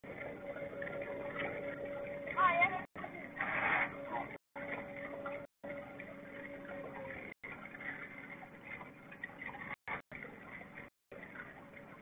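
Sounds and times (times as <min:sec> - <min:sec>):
water lapping around boat: 0:00.0 - 0:12.0.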